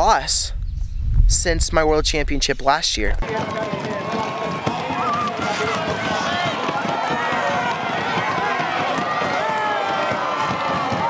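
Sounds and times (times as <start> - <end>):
spectators shouting and cheering: 3.2 - 11.0.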